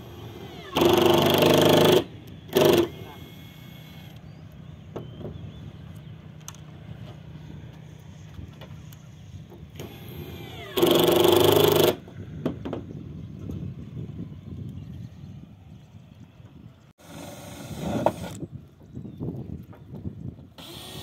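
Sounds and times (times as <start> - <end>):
cordless drill running: 0.0 - 4.2, 9.8 - 12.0, 20.6 - 21.0.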